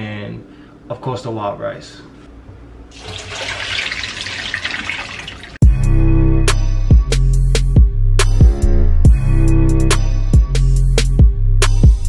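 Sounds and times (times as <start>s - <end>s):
loud music with a beat: 5.6s - 12.0s.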